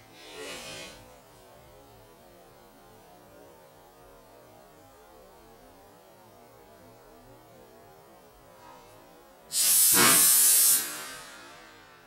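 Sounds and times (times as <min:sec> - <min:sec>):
air gun hissing rush: 0:09.5 - 0:12.0
balloon bursting: 0:09.6 - 0:11.1.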